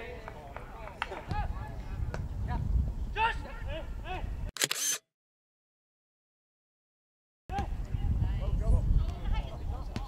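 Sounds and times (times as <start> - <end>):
low wind rumble: 1.3 - 4.5, 7.6 - 10.0.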